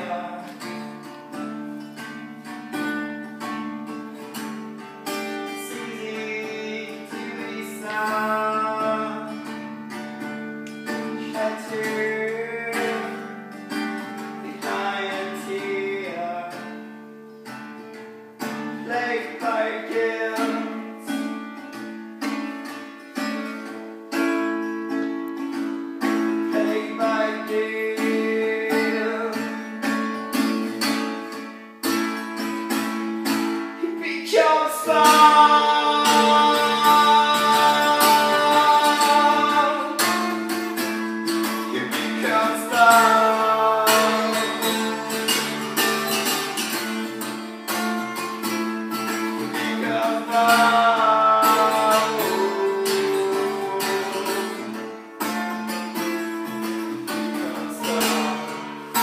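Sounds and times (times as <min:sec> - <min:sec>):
man singing: 0:00.0 - 0:01.2, 0:05.0 - 0:10.1, 0:10.8 - 0:17.0, 0:18.5 - 0:21.7, 0:26.0 - 0:30.7, 0:33.4 - 0:59.0
acoustic guitar strumming: 0:00.0 - 0:59.0.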